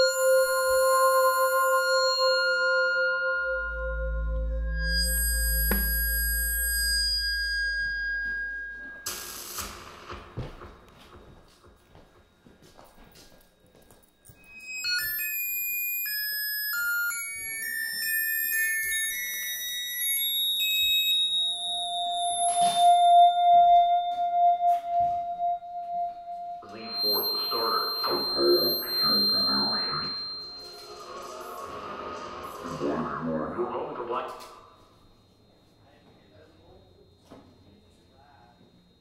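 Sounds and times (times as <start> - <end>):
synthesizer electronic music: 0.0 - 8.1, 22.3 - 34.7.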